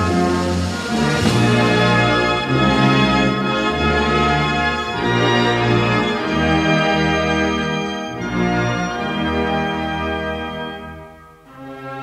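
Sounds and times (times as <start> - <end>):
brass band playing slow chords: 0.0 - 12.0.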